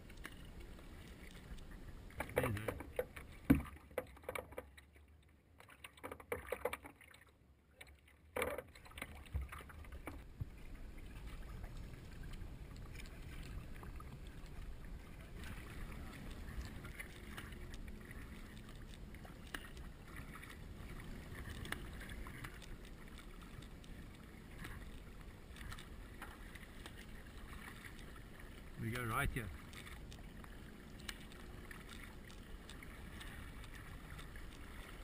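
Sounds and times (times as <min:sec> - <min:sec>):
kayak paddle splashing: 0:00.0 - 0:35.0.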